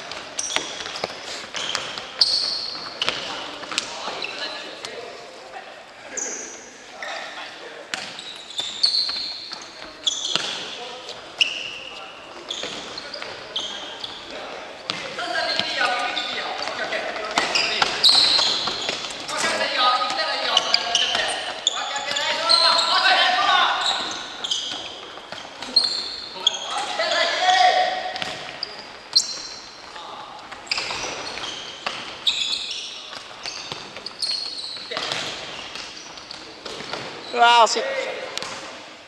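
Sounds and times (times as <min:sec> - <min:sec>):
shoes squeaking on wooden floor: 0:00.0 - 0:05.2, 0:06.0 - 0:37.8
players calling out: 0:11.4 - 0:33.0.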